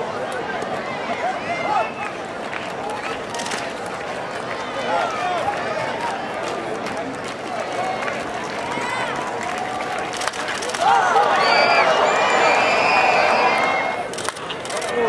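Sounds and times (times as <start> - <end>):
crowd shouts: 0.0 - 3.5, 4.5 - 14.2
crowd murmur: 0.0 - 15.0.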